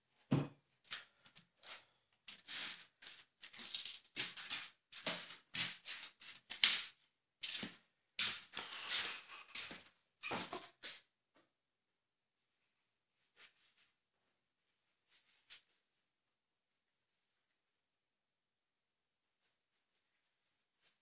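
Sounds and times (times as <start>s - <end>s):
rustling and scuffing of gear: 0.9s - 10.9s.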